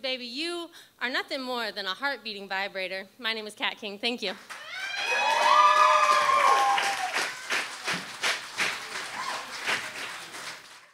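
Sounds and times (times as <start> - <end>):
audience applauding and cheering: 4.5 - 10.9.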